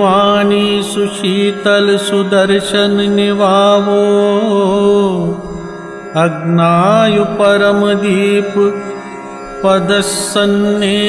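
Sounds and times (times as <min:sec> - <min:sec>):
man chanting a hymn: 0:00.0 - 0:09.0, 0:09.6 - 0:11.0
steady drone: 0:00.0 - 0:11.0.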